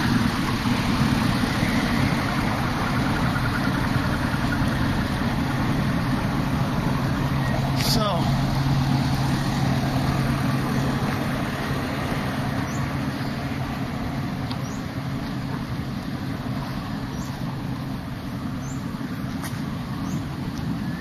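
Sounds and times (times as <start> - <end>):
engine running low rumble: 0.0 - 21.0.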